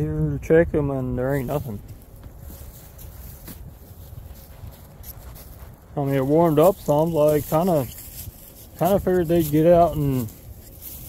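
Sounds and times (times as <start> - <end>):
footsteps through dry grass: 0.4 - 11.0.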